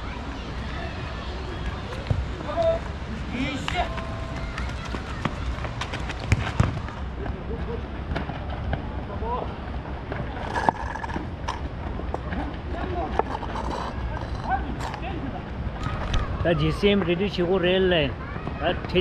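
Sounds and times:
ball being kicked thuds: 6.3s - 6.8s.

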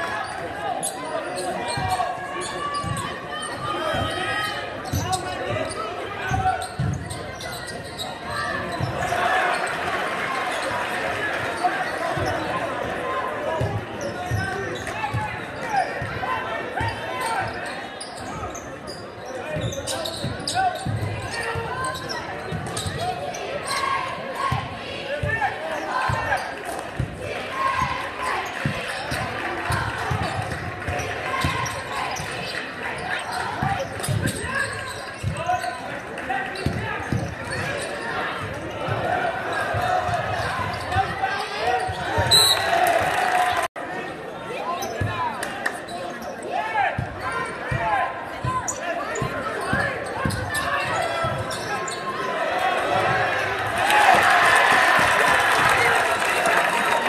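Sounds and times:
crowd chatter: 0.0s - 57.0s.

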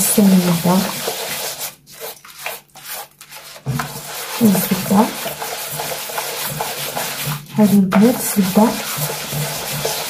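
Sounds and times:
hand rubbing mixture in clay bowl: 0.0s - 10.0s.

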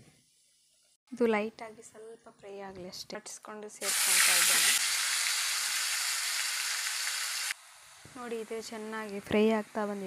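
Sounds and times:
food sizzling in a pan: 3.8s - 10.0s.

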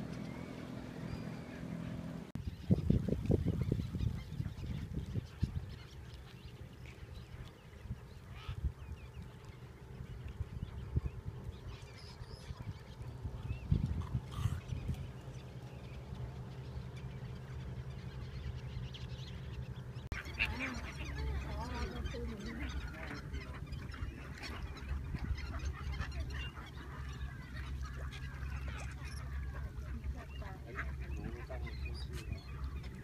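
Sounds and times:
gulls calling: 0.0s - 33.0s
steady low hum: 0.0s - 33.0s
wind buffeting microphone: 2.3s - 6.6s, 7.2s - 15.4s, 21.2s - 26.5s.

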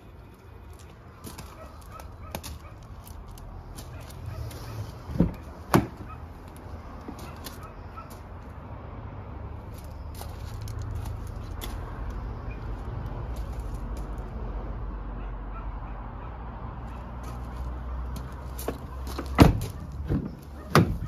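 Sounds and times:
car door thud: 5.1s - 6.1s, 19.2s - 21.0s.

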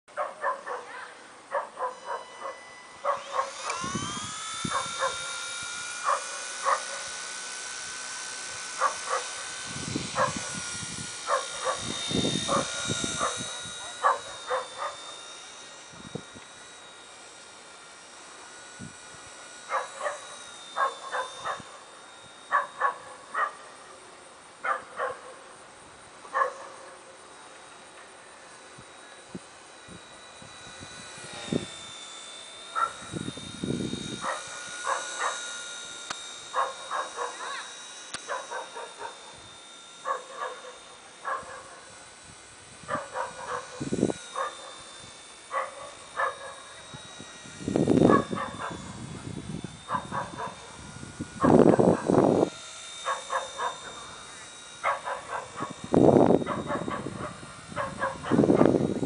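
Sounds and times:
rc helicopter rotors whining: 0.1s - 59.0s.

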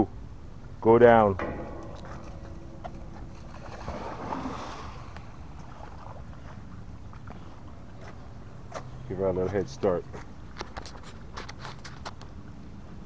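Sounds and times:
water splashing: 1.4s - 7.1s.

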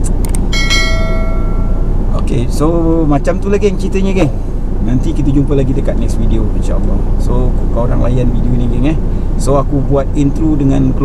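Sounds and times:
bell chime: 0.5s - 2.0s.

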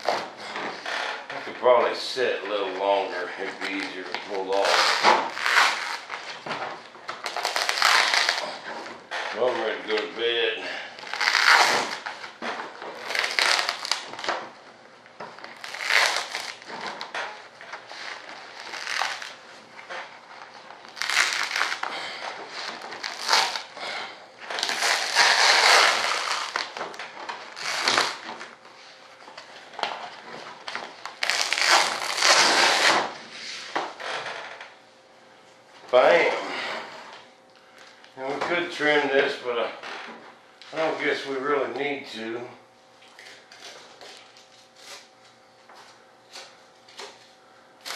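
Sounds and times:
aluminium foil crinkling: 7.2s - 8.6s, 12.9s - 14.3s, 15.4s - 16.7s, 17.9s - 19.4s, 20.8s - 22.1s, 22.7s - 23.7s, 24.5s - 26.8s, 31.1s - 32.8s.

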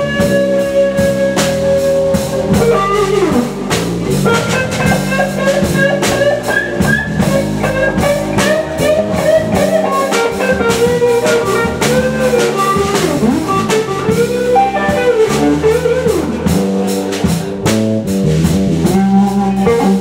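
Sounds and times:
electric guitar solo: 0.0s - 16.9s, 19.0s - 20.0s
blues band playing: 0.0s - 20.0s.

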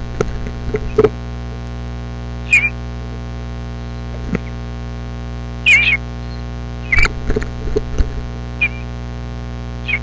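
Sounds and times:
loud electrical mains hum: 0.0s - 10.0s
bird chirping: 2.5s - 2.8s, 5.6s - 7.1s, 8.6s - 8.9s.

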